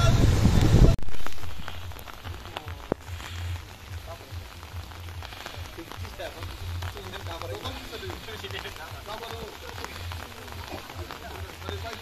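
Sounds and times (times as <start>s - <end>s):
light rain pattering: 0.0s - 12.0s
crowd murmuring: 1.9s - 12.0s.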